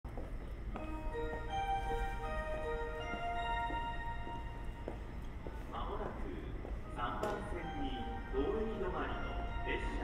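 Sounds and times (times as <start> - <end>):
recorded announcement voice: 5.6 - 10.0
electronic train-approach chime: 6.9 - 10.0.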